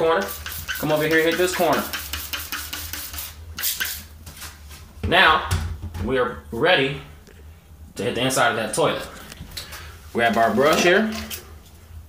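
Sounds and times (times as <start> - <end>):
low steady hum: 0.0 - 12.0
spray bottle squirting: 0.2 - 4.1.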